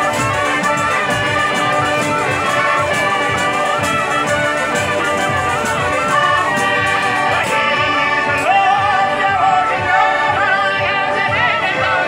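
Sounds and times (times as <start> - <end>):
jingling frame drum: 0.0 - 10.4
accordion: 0.0 - 12.0
bagpipe and reed pipe: 0.0 - 12.0
man singing: 7.2 - 12.0.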